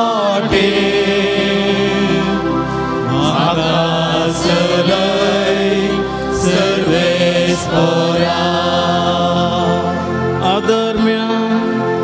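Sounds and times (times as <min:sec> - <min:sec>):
devotional hymn singing: 0:00.0 - 0:12.0
sustained chords: 0:00.0 - 0:12.0.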